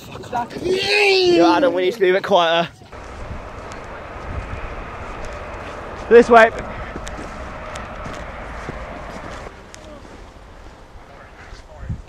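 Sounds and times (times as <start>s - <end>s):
low rumble: 3.0s - 11.2s.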